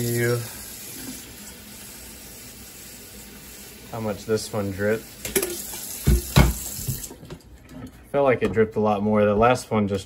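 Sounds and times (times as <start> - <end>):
running water hissing: 0.0 - 7.2.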